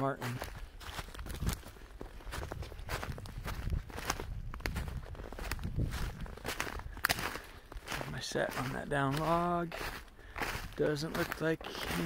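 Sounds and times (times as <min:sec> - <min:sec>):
footsteps crunching in snow: 0:00.0 - 0:12.0.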